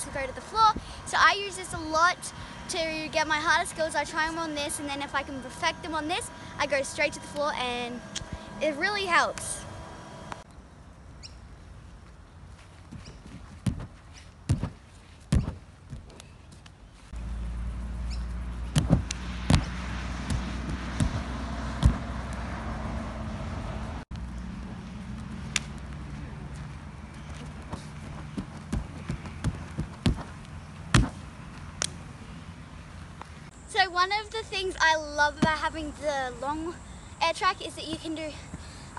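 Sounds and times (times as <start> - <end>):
steady low hum: 0.0 - 38.9
thuds on inflatable air track: 13.5 - 16.1, 18.7 - 22.1, 27.6 - 31.2.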